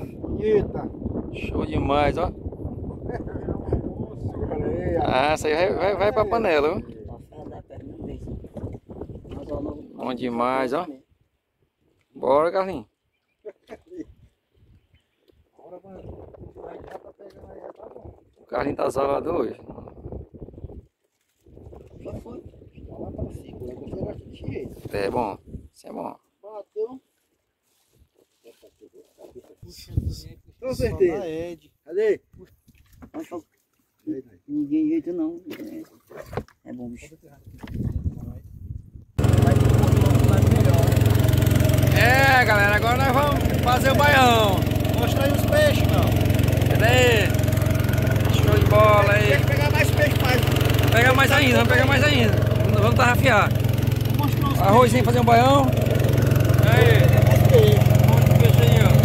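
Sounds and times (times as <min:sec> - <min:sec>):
men murmuring: 0:39.2 - 0:59.0
small boat engine running: 0:39.2 - 0:59.0.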